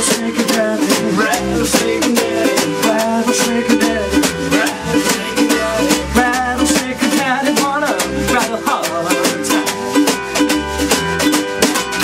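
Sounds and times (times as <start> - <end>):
acoustic swing band playing: 0.0 - 12.0
snare drum beat: 0.0 - 12.0
strummed ukulele: 0.0 - 12.0.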